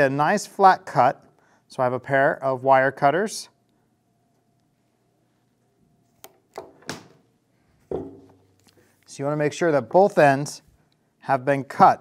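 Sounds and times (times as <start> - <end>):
thunk: 7.9 - 8.2.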